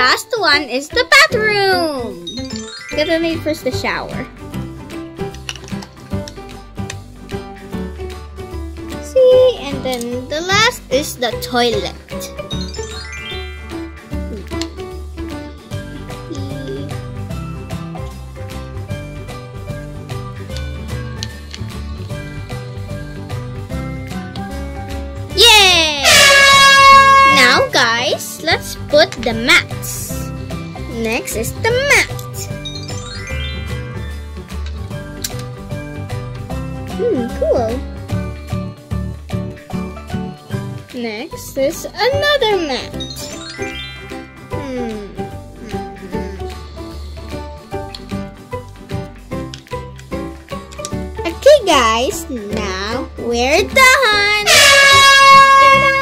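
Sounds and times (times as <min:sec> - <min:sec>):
light background music: 0:00.0 - 0:56.0
buzzy horn-like sound effect: 0:26.0 - 0:27.8, 0:54.5 - 0:56.0.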